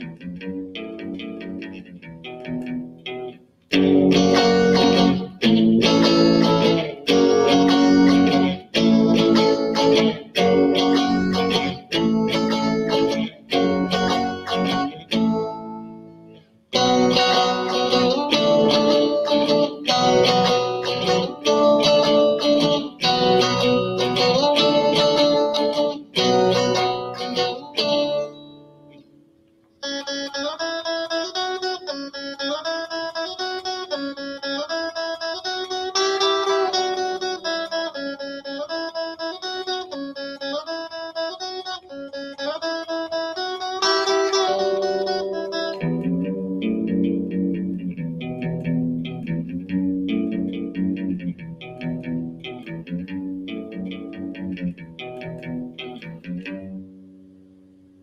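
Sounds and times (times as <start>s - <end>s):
electric guitar through amplifier: 0.0s - 58.0s.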